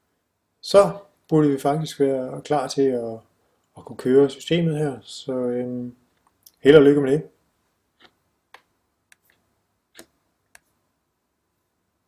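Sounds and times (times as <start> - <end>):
faint steady hiss: 0.0 - 12.0
computer mouse clicks: 8.0 - 10.7.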